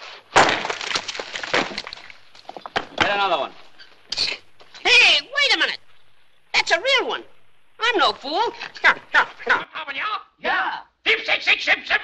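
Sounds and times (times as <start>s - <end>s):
rocks knocking and clattering: 0.3s - 4.9s.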